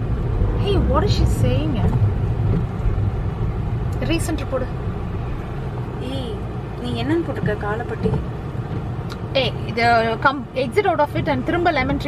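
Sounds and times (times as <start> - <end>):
car driving rumble inside cabin: 0.0 - 12.0
voices: 6.0 - 8.3, 9.1 - 12.0.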